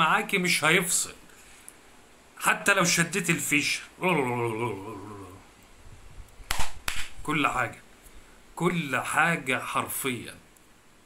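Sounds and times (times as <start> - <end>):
hand claps: 6.5 - 7.2.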